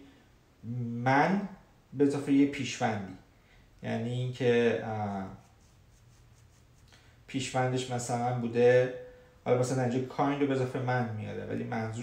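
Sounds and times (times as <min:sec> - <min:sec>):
faint room noise: 0:00.0 - 0:12.0
man speaking: 0:00.6 - 0:03.2, 0:03.8 - 0:05.5, 0:07.3 - 0:12.0.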